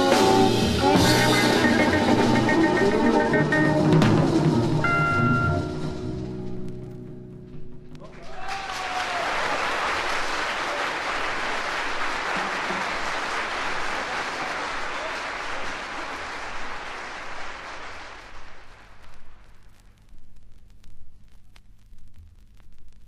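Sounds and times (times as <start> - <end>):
jazz music: 0.0 - 8.0
record surface hiss and hum: 0.0 - 23.0
audience applauding: 8.0 - 19.0.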